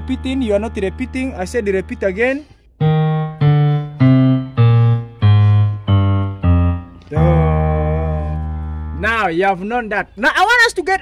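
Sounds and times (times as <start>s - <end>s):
keyboard piano notes descending: 2.8s - 9.4s.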